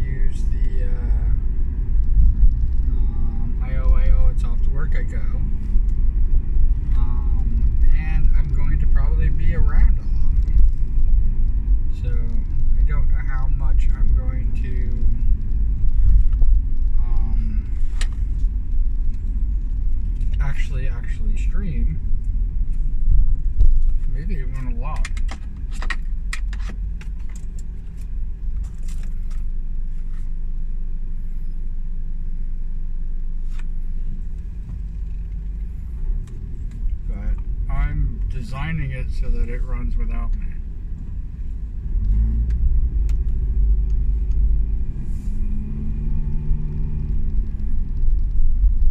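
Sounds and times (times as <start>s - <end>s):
person talking: 0.0s - 1.4s, 2.9s - 5.6s, 6.9s - 10.6s, 12.0s - 15.2s, 17.0s - 17.8s, 20.4s - 22.0s, 24.0s - 25.2s, 37.1s - 40.6s
road rumble inside car: 0.0s - 48.9s.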